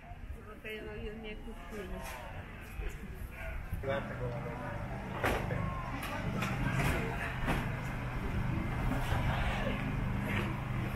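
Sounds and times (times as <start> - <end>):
open-air background noise: 0.0 - 10.9.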